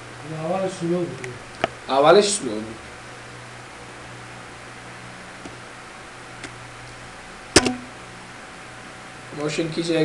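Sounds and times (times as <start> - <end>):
steady low hum: 0.0 - 10.0
mouse button double click: 7.6 - 7.9.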